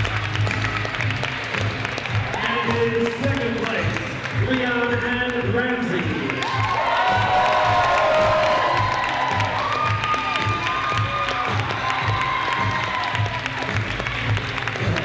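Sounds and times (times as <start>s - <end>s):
crowd clapping and cheering: 0.0s - 15.0s
upbeat music with steady beat: 0.0s - 15.0s.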